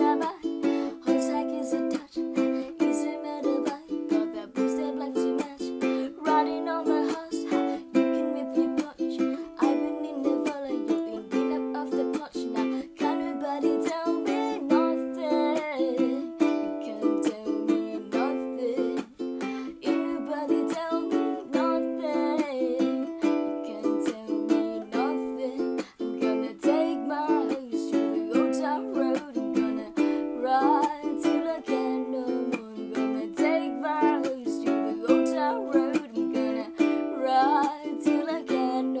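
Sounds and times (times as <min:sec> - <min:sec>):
person singing: 0:00.0 - 0:39.0
ukulele strumming: 0:00.0 - 0:39.0.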